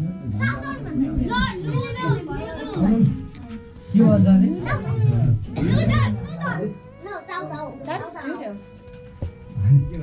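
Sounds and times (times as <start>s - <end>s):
faint background music: 0.0s - 10.0s
people talking: 0.3s - 3.2s
child talking: 0.4s - 3.0s, 4.6s - 8.6s.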